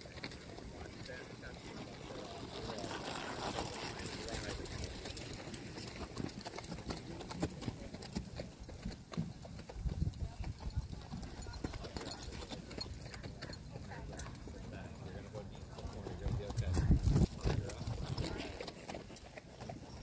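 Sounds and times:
horse hoofbeats on dirt: 0:00.0 - 0:20.0.

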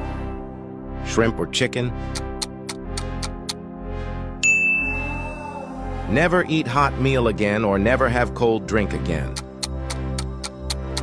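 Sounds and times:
game show music bed: 0:00.8 - 0:11.0
bright ding: 0:04.4 - 0:05.5.

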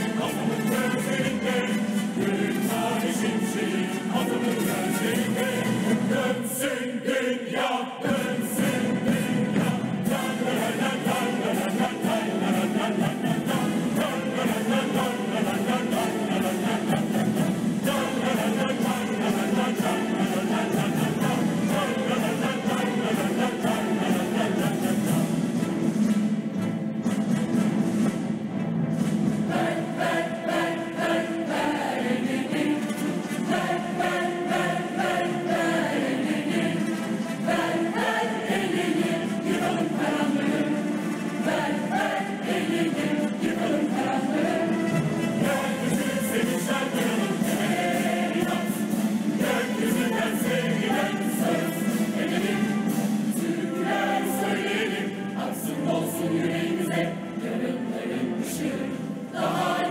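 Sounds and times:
large choir singing a march: 0:00.0 - 0:59.9
symphony orchestra strings: 0:00.0 - 0:59.9.

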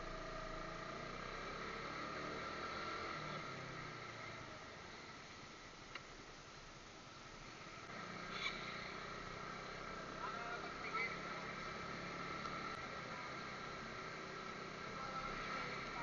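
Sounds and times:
motorcycle engine and road noise: 0:00.0 - 0:16.0.

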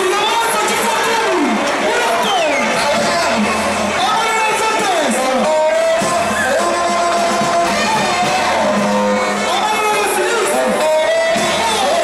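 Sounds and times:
large street crowd noise: 0:00.0 - 0:12.0
voices over loudspeakers: 0:00.0 - 0:12.0.

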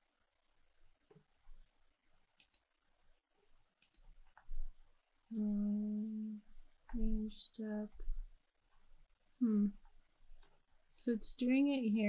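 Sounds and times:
faint clicks: 0:02.4 - 0:02.7, 0:03.8 - 0:04.7
woman humming: 0:05.3 - 0:06.4, 0:09.4 - 0:09.8.

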